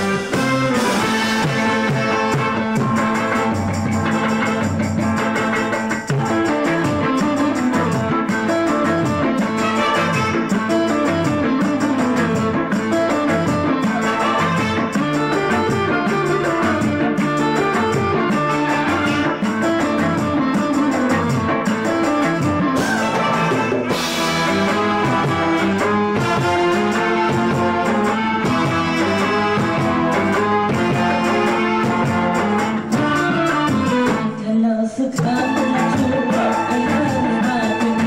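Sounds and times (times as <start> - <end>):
bass guitar: 0.0 - 34.4
drum kit beat: 0.0 - 34.4, 35.2 - 38.0
electric guitar: 0.0 - 38.0.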